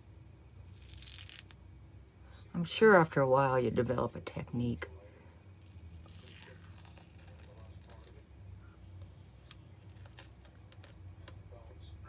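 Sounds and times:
low steady hum: 0:00.0 - 0:12.0
face mask peeling from skin: 0:00.6 - 0:01.6, 0:05.5 - 0:08.2, 0:09.4 - 0:11.1.

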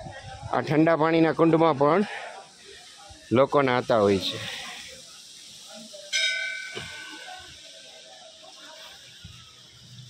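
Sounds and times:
metal bell struck: 0:06.1 - 0:07.3.

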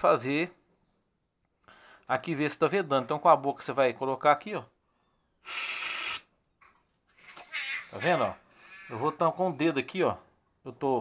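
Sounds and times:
air hissing through valve: 0:05.4 - 0:06.3.

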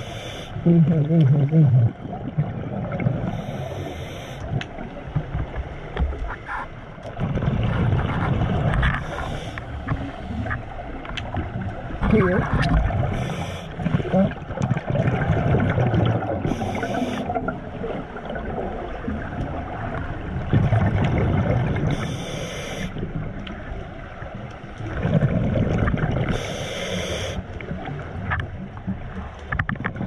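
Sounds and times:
gurgling exhaled bubbles: 0:00.6 - 0:05.0, 0:07.1 - 0:10.6, 0:11.3 - 0:22.2, 0:24.8 - 0:26.8
hissing regulator inhalations: 0:03.3 - 0:04.5, 0:09.0 - 0:10.5, 0:13.1 - 0:13.8, 0:16.4 - 0:17.4, 0:21.9 - 0:23.0, 0:26.3 - 0:27.4.

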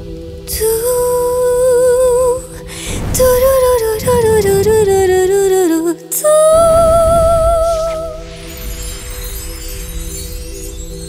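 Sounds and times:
sustained backing drone: 0:00.0 - 0:08.8.

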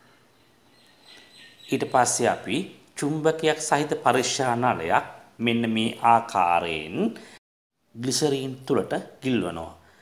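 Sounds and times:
faint background hiss: 0:00.0 - 0:10.0
man speaking: 0:01.7 - 0:07.3, 0:07.9 - 0:09.8.

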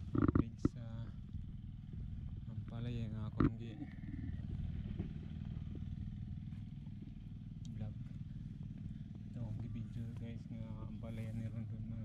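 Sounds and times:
small engine humming: 0:00.0 - 0:12.0.

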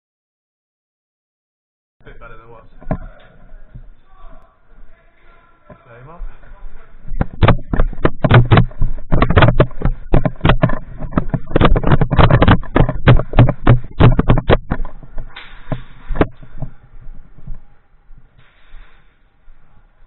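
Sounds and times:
sharp cracks and knocks: 0:07.2 - 0:16.7
short hiss: 0:18.4 - 0:19.3.

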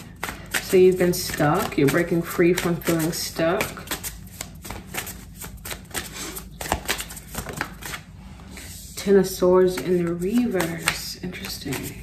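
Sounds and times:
cards being shuffled: 0:00.0 - 0:08.1, 0:09.7 - 0:12.0.

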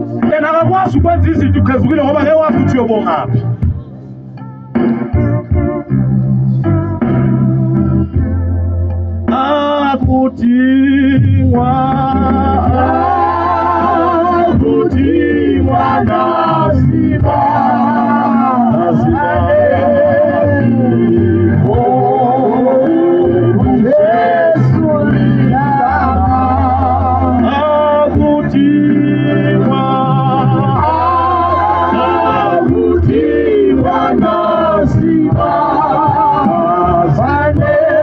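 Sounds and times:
man singing gospel: 0:00.0 - 0:03.4, 0:09.3 - 0:38.0
instrumental backing music: 0:00.0 - 0:38.0
organ keyboard chords: 0:00.0 - 0:38.0.

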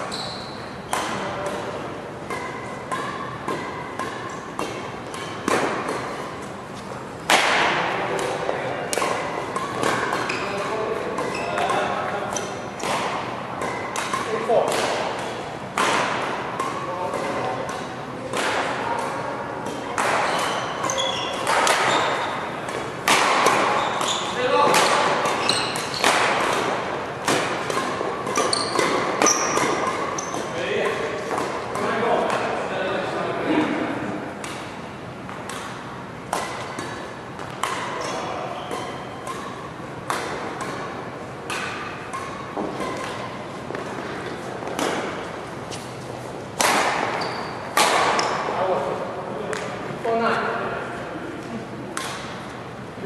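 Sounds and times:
badminton racket hitting shuttlecock: 0:00.9 - 0:06.4, 0:11.2 - 0:32.5, 0:35.3 - 0:45.9, 0:46.6 - 0:48.5.

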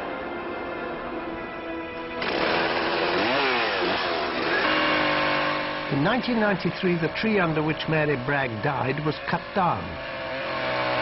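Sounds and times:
chainsaw revving: 0:02.2 - 0:11.0.

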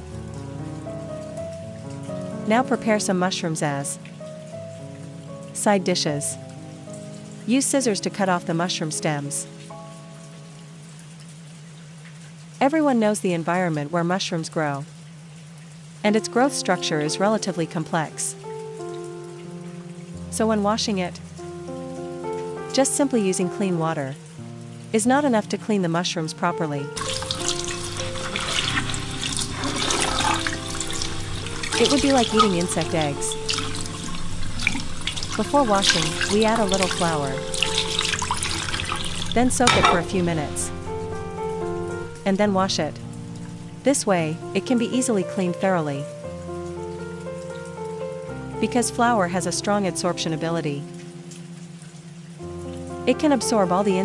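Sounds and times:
soft background music: 0:00.0 - 0:54.0
water pouring into a bowl: 0:27.0 - 0:42.3.

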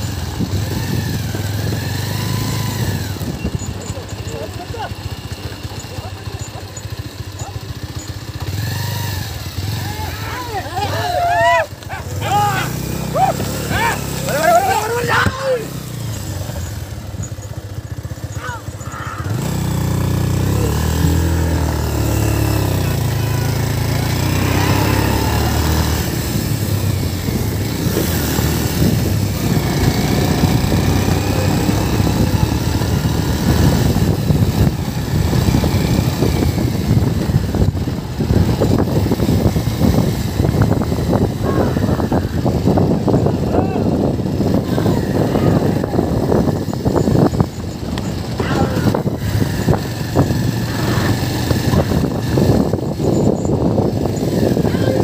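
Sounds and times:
small vehicle engine running: 0:00.0 - 0:55.0
people shouting: 0:09.6 - 0:15.9, 0:18.3 - 0:19.5, 0:41.3 - 0:42.5, 0:43.4 - 0:46.2, 0:48.3 - 0:49.3.

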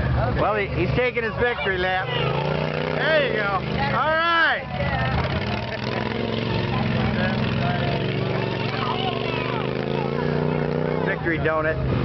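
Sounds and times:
spectators' voices: 0:00.0 - 0:11.9.

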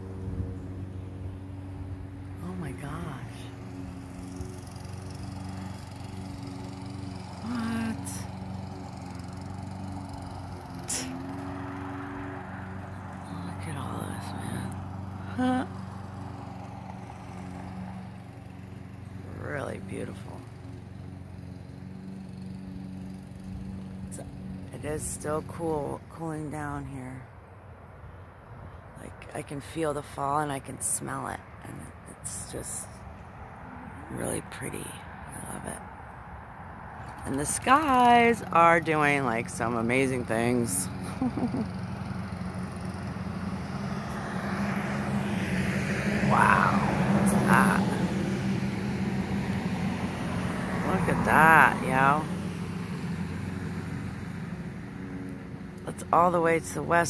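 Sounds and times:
motor humming: 0:00.0 - 0:24.7
low engine rumble: 0:00.0 - 0:57.0.

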